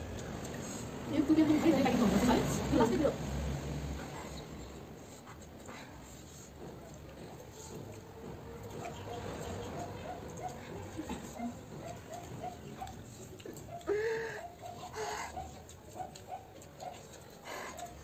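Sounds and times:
eating and slurping: 3.5s - 18.0s.

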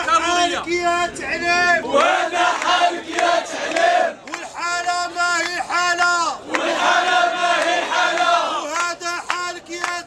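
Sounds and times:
crowd chanting a slogan: 0.0s - 10.0s.

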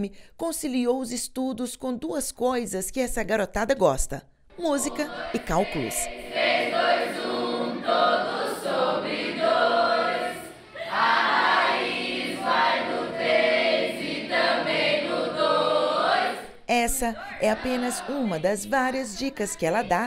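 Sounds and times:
students singing together: 4.6s - 20.0s.

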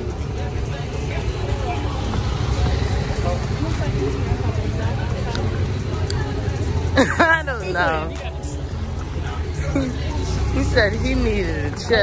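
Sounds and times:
indistinct voices talking: 0.0s - 12.0s
vehicle rumble: 0.0s - 12.0s.

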